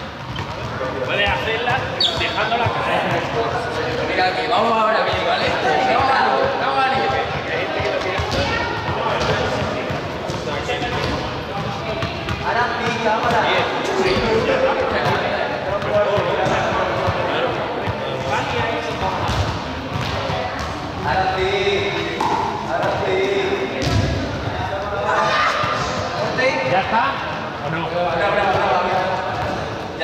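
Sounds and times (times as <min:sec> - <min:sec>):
people talking in echoing hall: 0:00.0 - 0:30.0.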